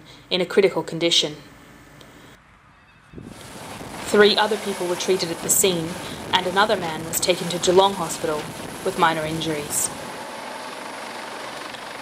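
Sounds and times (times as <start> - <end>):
helicopter lifting off: 3.1 - 12.0.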